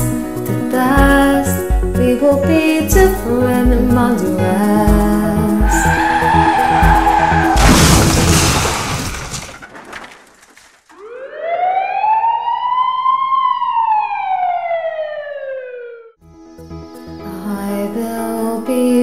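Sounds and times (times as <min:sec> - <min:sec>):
siren wailing: 0:05.6 - 0:07.7, 0:10.9 - 0:16.2
loud noisy crash: 0:07.4 - 0:10.5.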